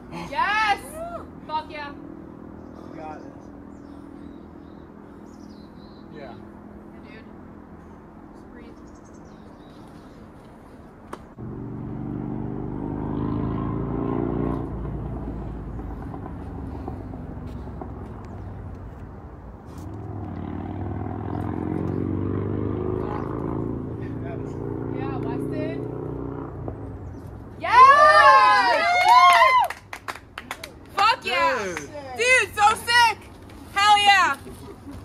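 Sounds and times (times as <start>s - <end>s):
vehicle engine passing: 0.0s - 35.0s.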